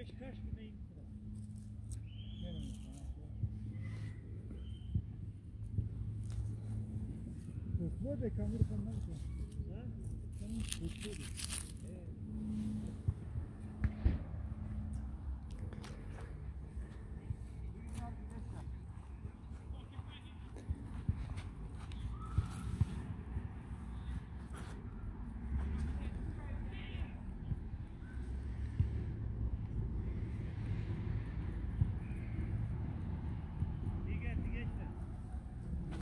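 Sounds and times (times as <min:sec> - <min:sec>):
low rumble: 0:03.1 - 0:19.8.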